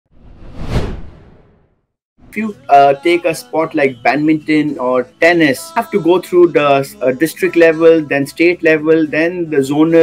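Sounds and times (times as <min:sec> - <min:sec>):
whoosh sound effect: 0:00.1 - 0:01.7.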